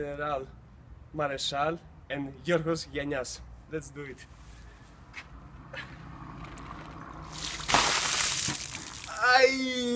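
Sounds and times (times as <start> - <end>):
water splashing down: 7.3 - 9.2.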